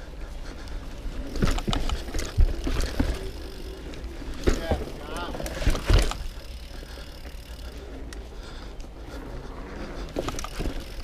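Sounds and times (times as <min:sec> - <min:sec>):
bike knocks: 0:04.3 - 0:06.4.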